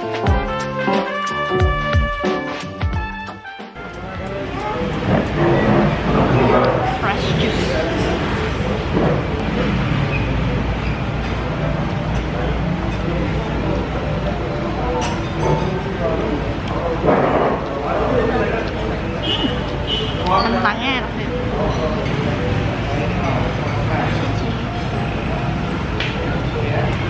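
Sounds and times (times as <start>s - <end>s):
murmur of many voices: 3.8s - 27.0s.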